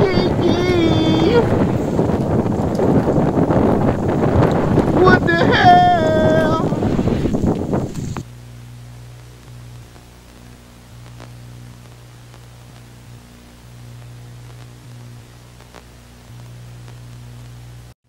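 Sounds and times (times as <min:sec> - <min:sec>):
wind rushing on microphone: 0:00.0 - 0:08.3
person crying out: 0:05.0 - 0:06.7.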